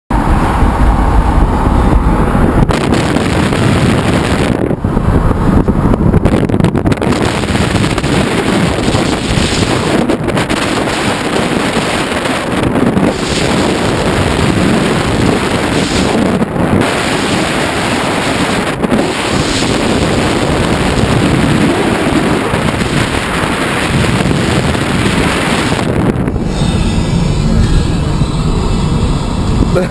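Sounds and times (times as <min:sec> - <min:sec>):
wind and road noise: 0:00.1 - 0:29.9
wind buffeting microphone: 0:00.1 - 0:29.9.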